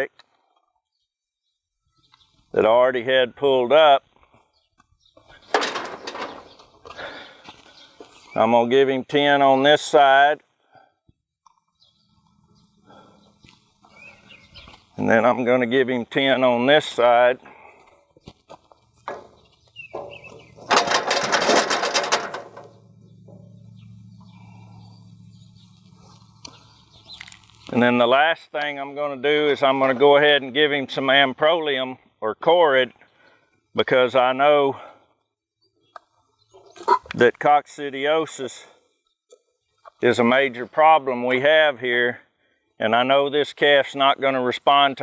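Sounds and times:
steel chute rattling and clanking: 0:05.3 - 0:07.4, 0:19.0 - 0:26.1
low steady hum: 0:18.6 - 0:28.2.

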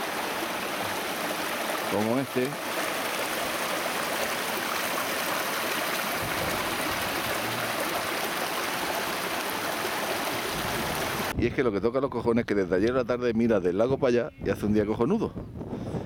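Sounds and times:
stream rushing over rocks: 0:00.0 - 0:11.3.

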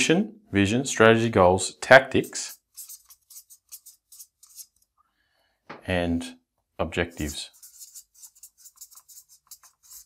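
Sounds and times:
marker pen scratching on paper: 0:02.0 - 0:04.9, 0:07.0 - 0:10.0
marker tip squeak: 0:02.2 - 0:04.7.

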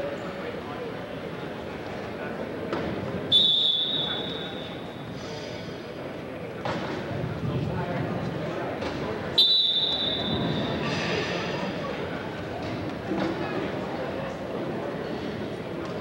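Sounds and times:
crowd murmur: 0:00.0 - 0:16.0
referee's whistle blasts: 0:03.3 - 0:04.9, 0:09.4 - 0:10.8.

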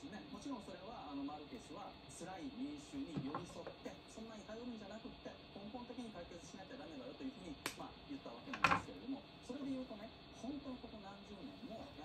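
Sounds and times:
television talk: 0:00.0 - 0:12.0.

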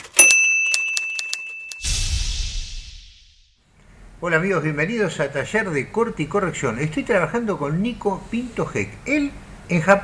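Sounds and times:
high bell ding: 0:00.1 - 0:01.9
whoosh: 0:01.8 - 0:03.7.

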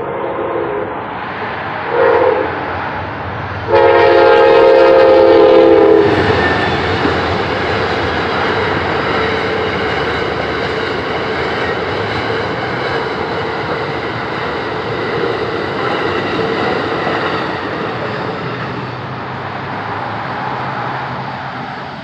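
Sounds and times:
train horn blast: 0:00.0 - 0:01.0, 0:01.8 - 0:02.6, 0:03.7 - 0:06.6
train cars rolling: 0:01.0 - 0:22.0.

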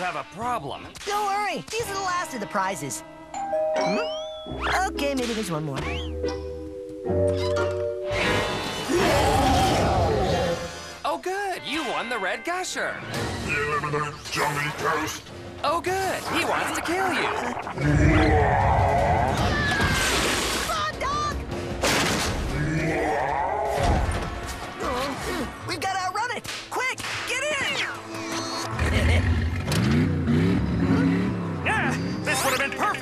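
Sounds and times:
background music: 0:00.0 - 0:33.0
noisy cartoon sound effect: 0:16.2 - 0:20.1.

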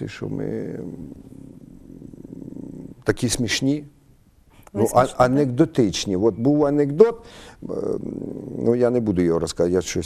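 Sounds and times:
man humming hesitantly: 0:07.6 - 0:08.7.

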